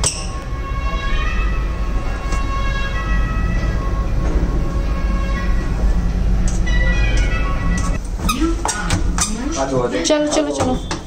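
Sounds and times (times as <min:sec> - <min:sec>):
lift cabin rumble and hum: 0:00.0 - 0:10.8.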